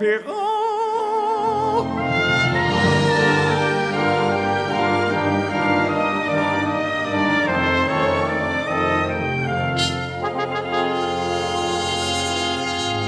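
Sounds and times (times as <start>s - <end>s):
orchestral strings: 1.3s - 13.0s
brass section: 1.8s - 13.0s.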